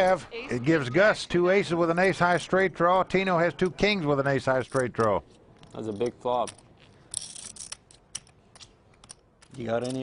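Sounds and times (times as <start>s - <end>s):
poker chips clicking: 4.6s - 10.0s.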